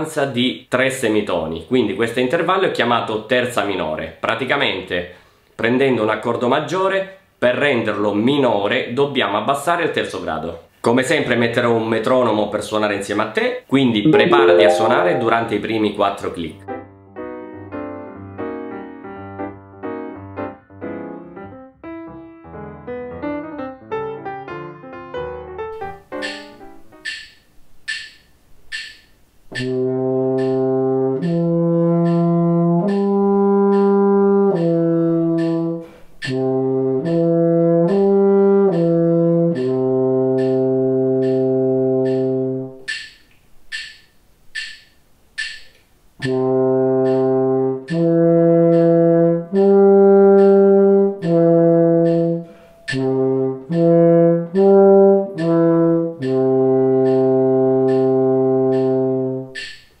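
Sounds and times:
french horn arpeggios: 14.1 - 15.8
metronome clicking: 26.2 - 29.8, 30.4 - 30.6, 32.0 - 34.0, 34.6 - 34.8, 35.4 - 36.4, 38.7 - 39.8, 40.4 - 40.6, 41.2 - 41.4, 42.0 - 46.4, 47.0 - 47.3, 47.9 - 49.8, 50.4 - 50.6, 51.2 - 53.9, 55.4 - 55.6, 56.2 - 60.0.

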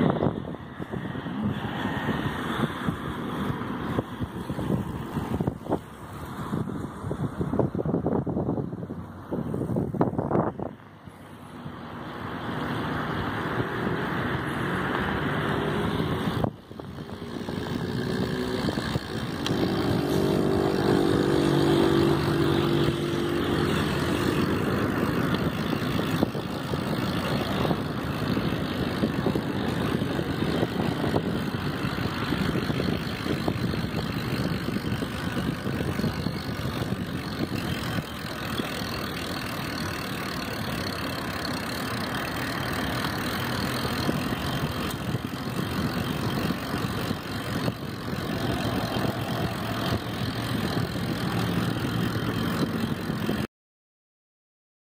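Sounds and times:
bicycle tyres on asphalt: 0.0 - 53.5
wind on microphone: 0.0 - 53.5
low droning tone: 12.6 - 31.0, 45.6 - 53.1.

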